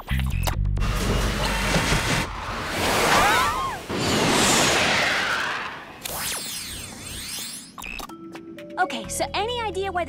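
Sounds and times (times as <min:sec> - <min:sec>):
cartoon whoosh: 0:02.8 - 0:07.4.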